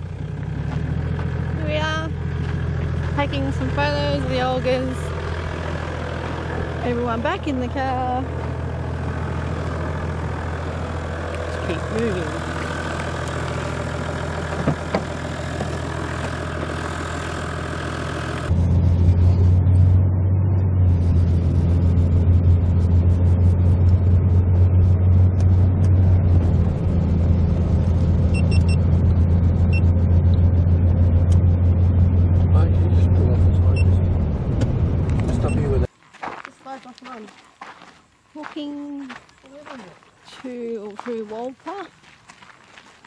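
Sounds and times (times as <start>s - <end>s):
engine idling: 0.0s - 19.9s
engine and road drone in cabin: 0.0s - 35.9s.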